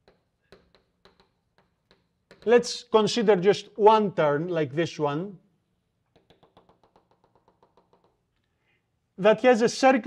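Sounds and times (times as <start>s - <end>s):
chalk chattering on blackboard: 0.0s - 2.6s, 6.1s - 8.3s.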